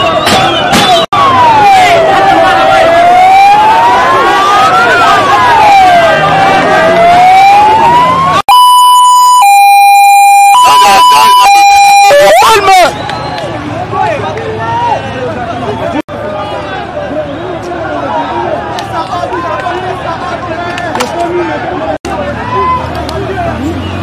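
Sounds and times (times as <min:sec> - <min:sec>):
crowd noise: 0:00.0 - 0:24.0
electronic siren wailing: 0:01.2 - 0:12.8.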